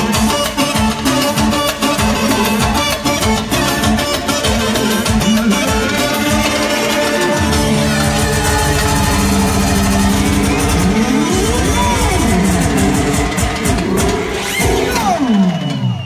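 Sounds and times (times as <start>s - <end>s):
steady dance beat: 0.0s - 15.2s
electronic keyboard: 0.0s - 15.6s.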